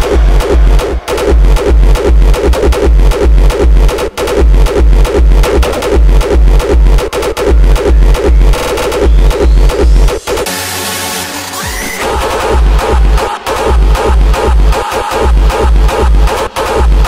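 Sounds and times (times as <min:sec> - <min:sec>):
heavy kick drum beats: 0:00.0 - 0:10.5, 0:11.9 - 0:17.0
hardstyle dance music: 0:00.0 - 0:17.0.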